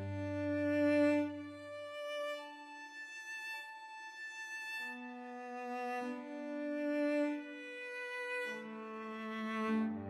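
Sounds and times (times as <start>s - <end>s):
bowed cello melody: 0.0s - 10.0s.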